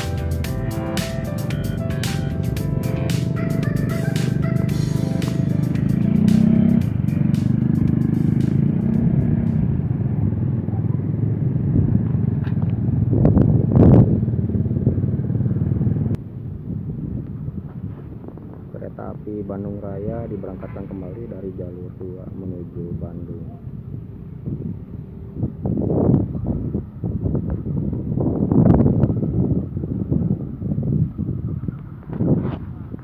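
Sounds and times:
background music: 0:00.0 - 0:09.6
diesel locomotive engine running: 0:00.0 - 0:10.5.

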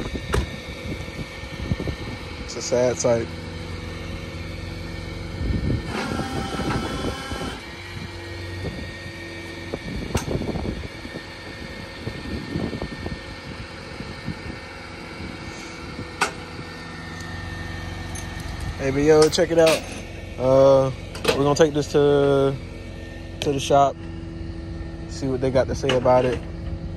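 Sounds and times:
truck engine running: 0:00.0 - 0:26.9
metal hardware clinking: 0:18.1 - 0:20.1.

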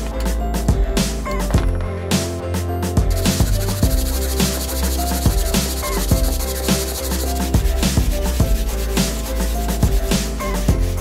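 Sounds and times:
background music with beat: 0:00.0 - 0:11.0
sandpaper rubbing on wood: 0:03.2 - 0:11.0.

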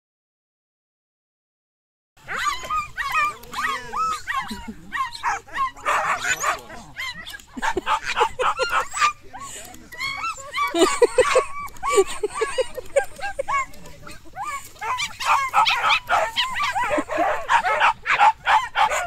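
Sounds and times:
dogs yapping excitedly: 0:02.2 - 0:19.0.

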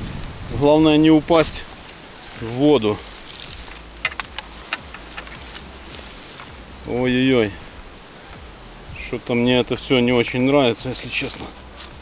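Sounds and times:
twigs crackling and snapping: 0:00.0 - 0:08.8, 0:09.8 - 0:12.0
low rumble: 0:00.0 - 0:10.2.

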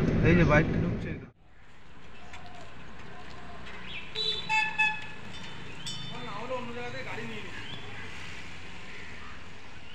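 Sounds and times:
low traffic rumble: 0:00.0 - 0:09.9
vehicle horn beeps: 0:04.2 - 0:05.2.

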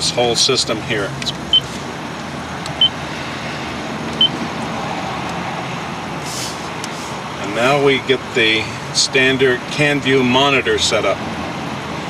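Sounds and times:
car engine running in cabin: 0:00.0 - 0:08.6.

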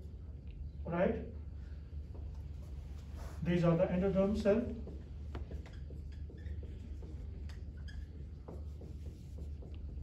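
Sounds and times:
low steady hum: 0:00.0 - 0:10.0
marker writing on whiteboard: 0:04.6 - 0:10.0.

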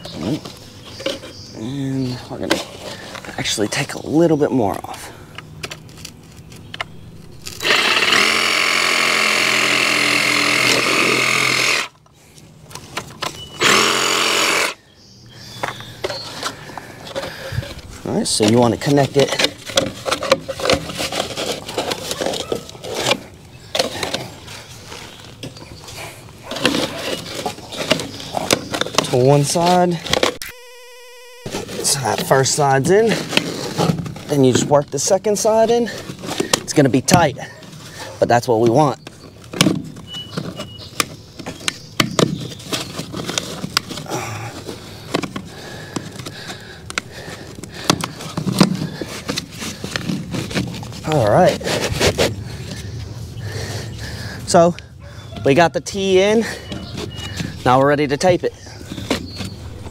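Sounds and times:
plastic pipe scraping and knocking: 0:18.4 - 0:24.3, 0:39.5 - 0:52.8.

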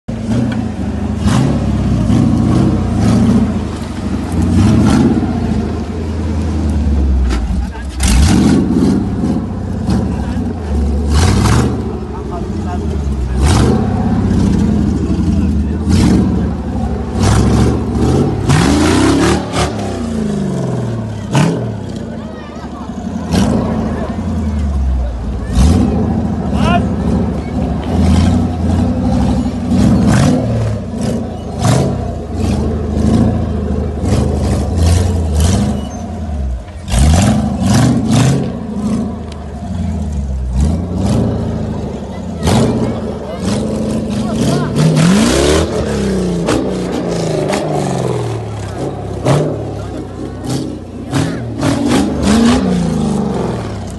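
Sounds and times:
off-road engine revving hard: 0:00.1 - 0:53.9
spectators' voices: 0:00.1 - 0:53.9.

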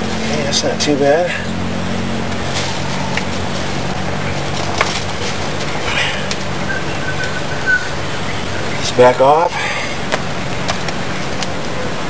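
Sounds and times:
broom bristles clicking and rustling: 0:02.3 - 0:07.4.

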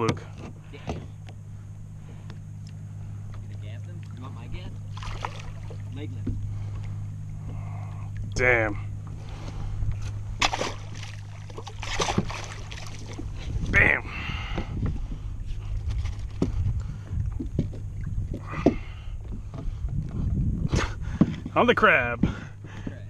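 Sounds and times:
steady low hum: 0:00.0 - 0:23.0
water splashing: 0:04.8 - 0:06.0, 0:10.4 - 0:13.3.

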